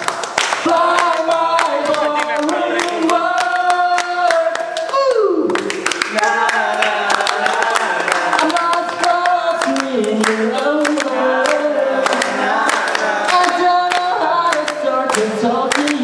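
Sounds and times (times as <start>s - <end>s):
hand claps keeping time: 0.0s - 16.0s
group singing without instruments: 0.5s - 4.9s, 6.1s - 16.0s.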